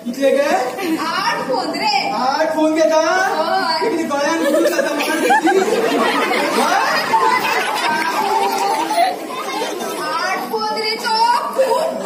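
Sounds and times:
voices talking in echoing hall: 0.0s - 12.0s.

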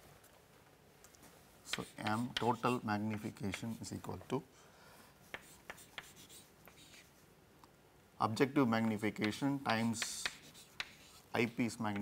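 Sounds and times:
chalk writing on chalkboard: 1.7s - 3.9s, 5.2s - 7.2s, 8.8s - 12.0s.

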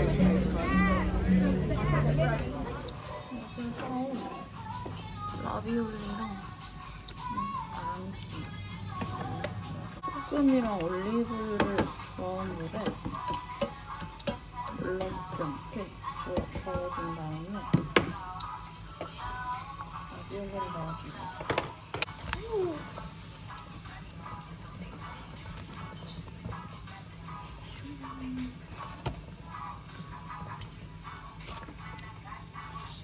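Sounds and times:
background music with singing: 0.0s - 33.0s.

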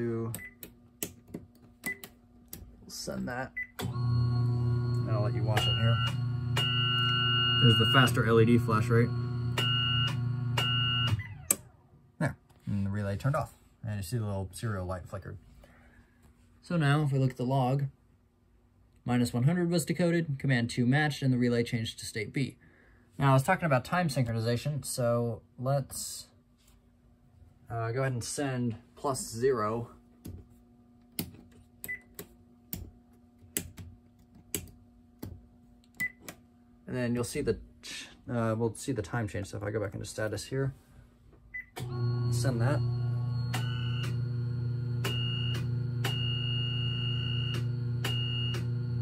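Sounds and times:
high tone keyed on and off: 3.8s - 11.6s, 41.8s - 49.0s.

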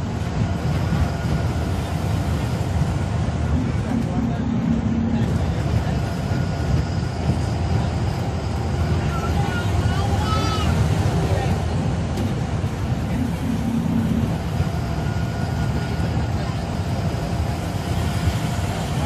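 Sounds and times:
bus diesel engine running: 0.0s - 19.0s
road and wind noise: 0.0s - 19.0s.

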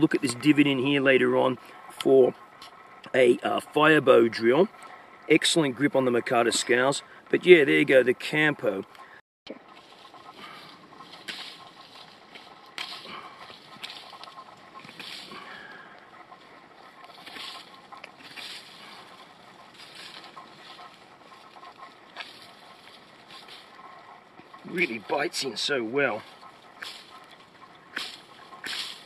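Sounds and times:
knife carving dry branch: 26.2s - 29.0s.

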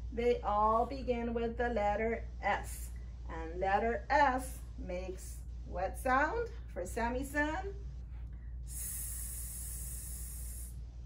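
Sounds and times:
woman hissing s sound: 8.7s - 10.8s.

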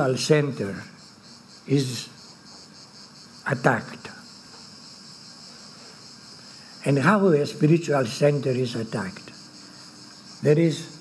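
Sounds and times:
man talking: 0.0s - 0.9s, 1.7s - 2.2s, 3.5s - 4.2s, 6.8s - 9.3s, 10.4s - 11.0s
steady high-pitched whine: 0.0s - 11.0s.

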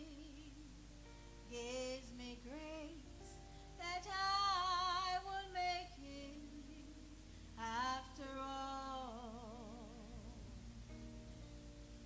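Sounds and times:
woman singing gospel song: 0.0s - 0.8s, 1.5s - 10.5s.

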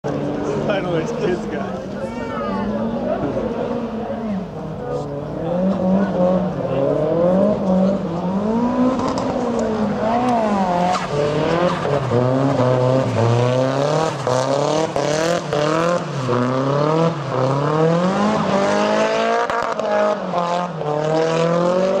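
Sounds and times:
car engine revving: 2.6s - 22.0s.

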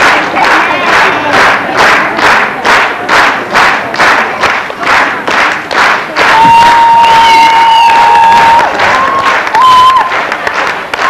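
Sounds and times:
audience clapping in unison: 0.0s - 11.0s.

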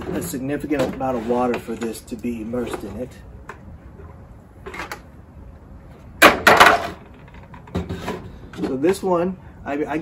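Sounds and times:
loud clatter of knocks: 6.2s - 8.2s.

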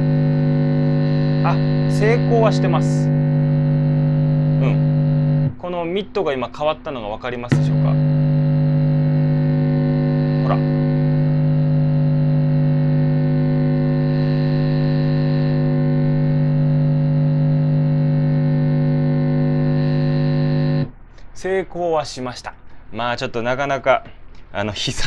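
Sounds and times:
electric bass note held: 0.0s - 5.6s, 7.4s - 20.9s.

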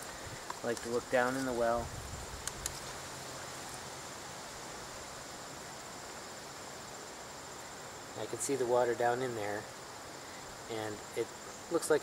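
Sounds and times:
insects chorus with high trill: 0.0s - 12.0s
faint clicks: 2.4s - 3.0s.

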